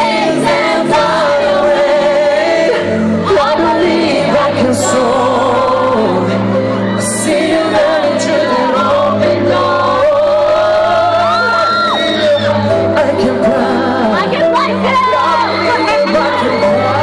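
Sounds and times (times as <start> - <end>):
loud amplified backing music: 0.0 - 17.0
man singing live: 0.8 - 17.0
crowd shouting and whooping: 5.8 - 13.0, 14.0 - 17.0.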